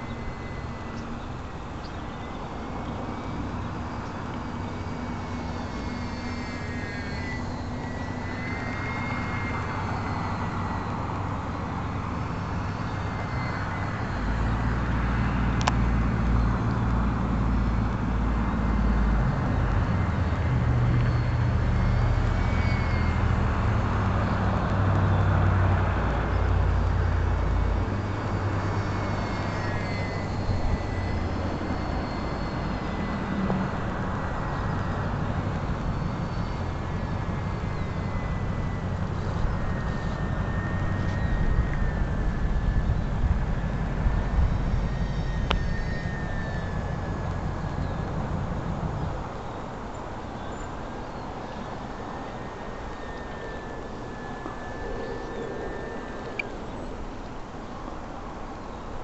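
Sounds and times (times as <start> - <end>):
model airplane motor whining: 0.0 - 59.0
wind on microphone: 0.0 - 59.0.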